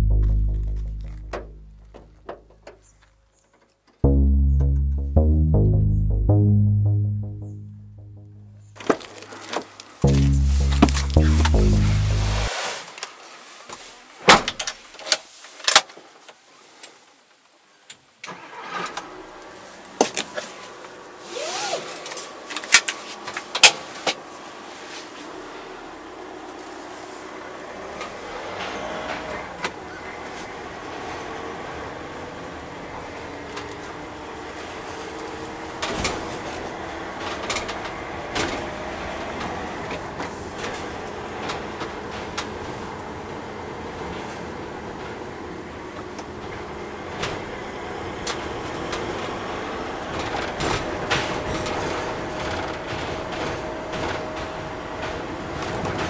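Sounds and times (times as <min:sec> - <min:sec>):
diesel van engine running: 0:00.0 - 0:02.3
diesel engine running: 0:00.0 - 0:02.4, 0:10.0 - 0:12.5
road and tyre noise: 0:00.0 - 0:03.8, 0:18.3 - 0:56.0
steady thin tone: 0:10.0 - 0:12.5.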